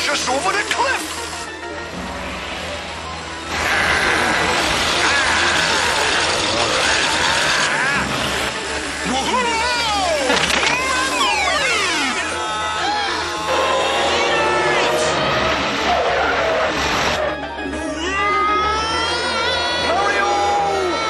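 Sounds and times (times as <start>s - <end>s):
loud rushing noise: 1.2s - 9.3s, 13.5s - 17.4s
cartoon music: 9.0s - 21.0s.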